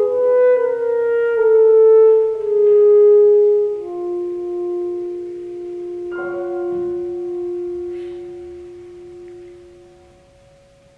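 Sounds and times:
piano: 0.0s - 10.9s
alto saxophone held note: 6.7s - 10.2s.

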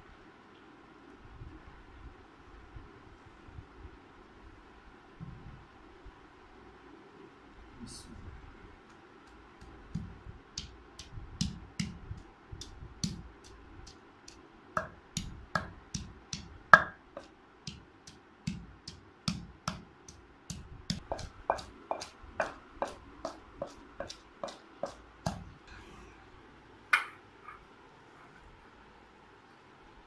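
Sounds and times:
pestle pounding in stone mortar: 9.6s - 14.0s, 14.8s - 25.5s.

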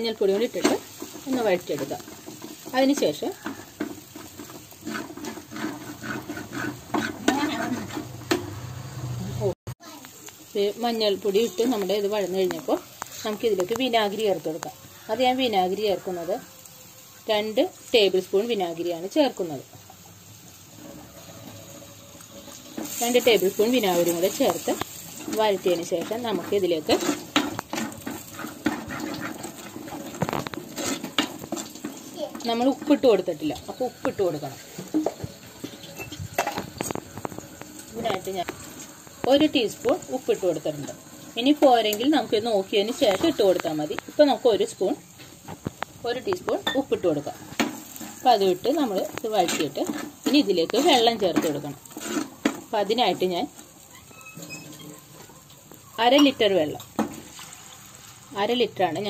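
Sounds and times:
metal spoon scraping clay pot: 0.2s - 8.5s, 20.8s - 42.0s, 46.3s - 52.6s.

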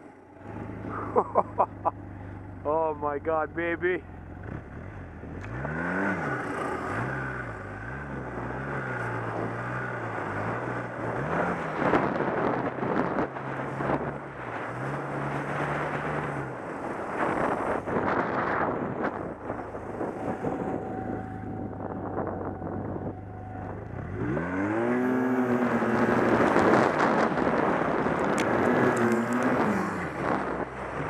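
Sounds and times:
snowmobile engine revving: 0.4s - 31.0s.

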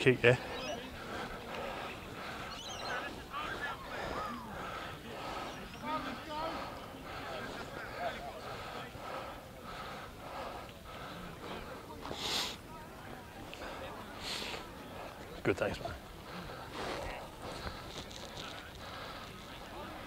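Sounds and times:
distant indistinct voices: 0.0s - 20.0s
outdoor background noise: 0.0s - 20.0s.

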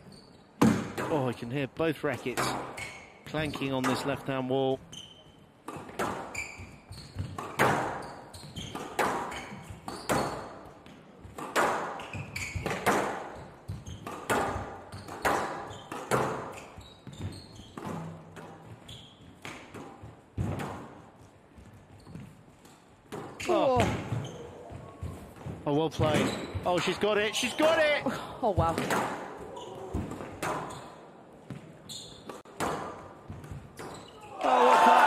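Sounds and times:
squash ball hitting rackets and walls: 0.6s - 1.3s, 2.2s - 4.2s, 5.6s - 27.0s, 28.4s - 34.3s.

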